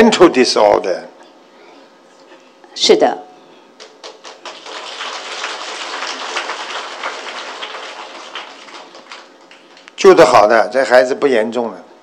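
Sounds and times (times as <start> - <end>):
audience applauding: 3.8 - 9.9.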